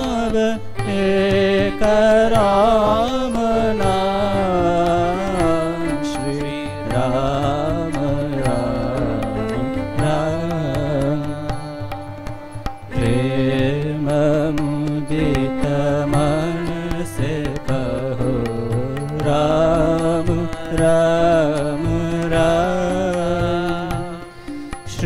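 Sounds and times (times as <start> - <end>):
men singing devotional song: 0.0 - 12.2, 13.0 - 25.0
harmonium drone: 0.0 - 25.0.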